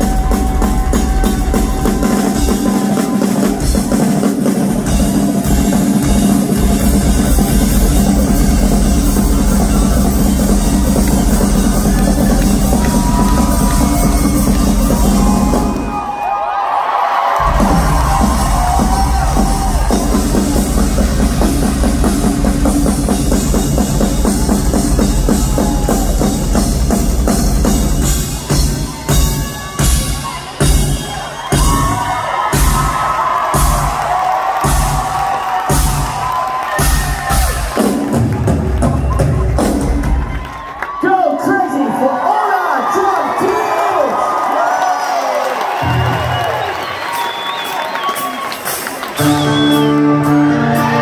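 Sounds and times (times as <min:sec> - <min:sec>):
rock drum kit solo: 0:00.0 - 0:16.2, 0:17.4 - 0:40.6.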